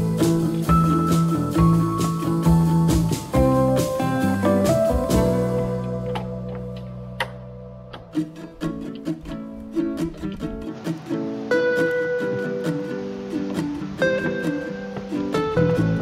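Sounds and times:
plucked guitar music: 0.0s - 16.0s.

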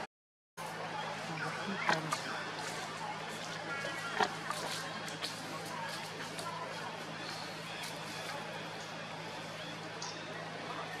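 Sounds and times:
faint distant voices: 0.6s - 11.0s.

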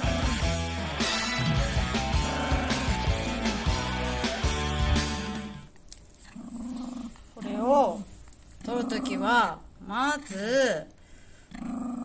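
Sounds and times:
dog growling: 6.2s - 7.8s, 8.6s - 9.6s, 11.5s - 12.0s.

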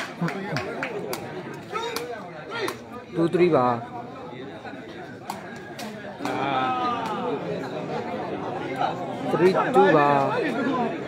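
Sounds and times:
crowd chatter: 0.0s - 11.0s
voices shouting: 5.6s - 11.0s.

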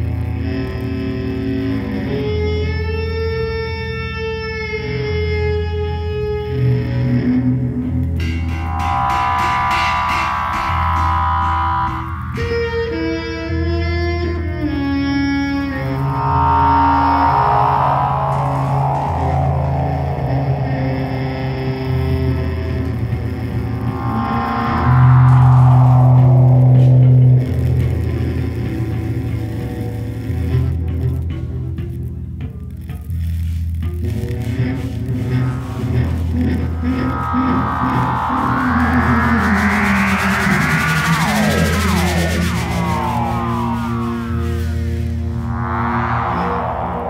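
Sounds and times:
low drone: 0.7s - 30.2s, 34.0s - 47.0s
bassoon and electronics music: 7.6s - 13.6s
loud low tone: 7.8s - 13.7s, 15.6s - 28.7s, 35.0s - 47.0s
cymbals and drums: 8.2s - 13.1s.

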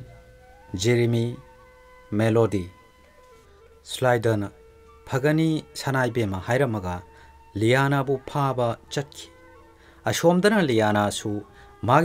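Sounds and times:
faint background music: 0.0s - 12.0s
man speaking: 0.7s - 1.4s, 2.1s - 2.8s, 3.9s - 4.5s, 5.1s - 7.0s, 7.6s - 9.3s, 10.1s - 12.0s.

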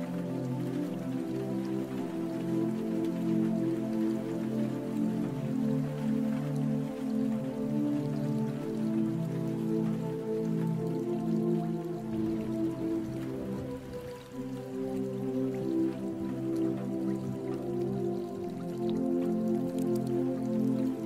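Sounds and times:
calm slow music: 0.0s - 21.0s
rain falling: 0.0s - 21.0s.

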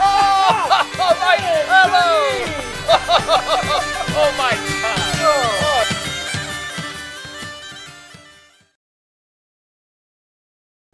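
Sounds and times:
bagpipes playing: 0.0s - 8.8s.

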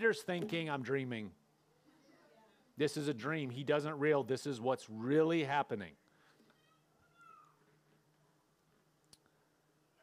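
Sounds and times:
faint click: 9.0s - 9.3s.

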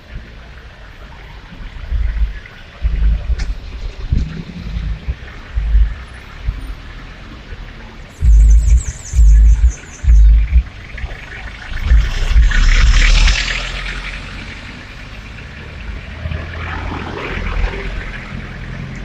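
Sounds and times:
road traffic passing: 0.0s - 19.0s
bass-heavy music bursts: 1.6s - 16.8s.

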